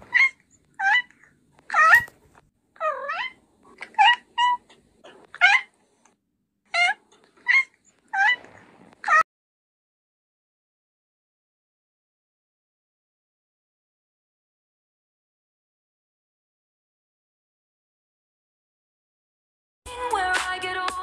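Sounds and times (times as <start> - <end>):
kitten meowing: 0.0 - 2.1, 2.8 - 4.7, 6.7 - 9.2.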